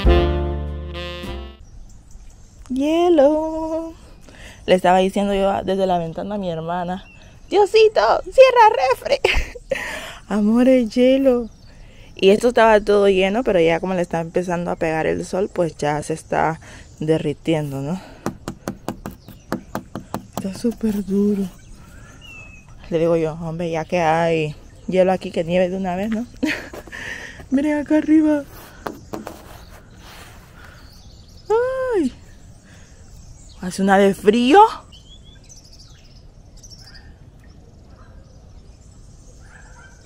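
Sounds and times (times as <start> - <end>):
small birds chirping: 1.5 - 40.0
fingernails tapping on ice: 18.2 - 20.8.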